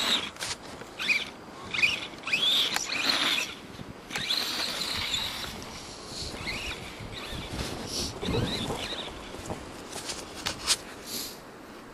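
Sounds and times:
toy truck motor whining: 0.0 - 5.6, 6.3 - 9.3.

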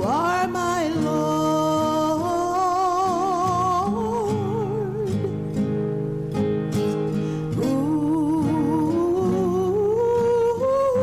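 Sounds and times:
person singing hymn with vibrato: 0.0 - 5.4, 7.5 - 11.0
strummed acoustic guitar: 0.0 - 11.0.

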